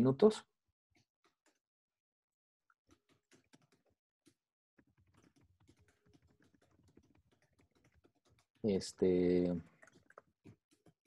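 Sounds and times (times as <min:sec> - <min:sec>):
faint keyboard typing: 0:02.9 - 0:03.9, 0:04.8 - 0:11.0.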